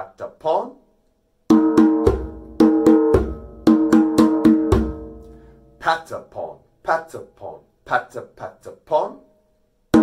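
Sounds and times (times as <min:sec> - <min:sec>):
djembe played by hand: 0:01.5 - 0:05.2.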